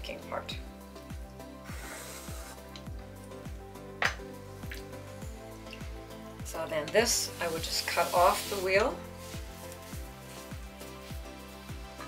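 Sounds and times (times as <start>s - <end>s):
background music with steady beat: 0.0s - 12.0s.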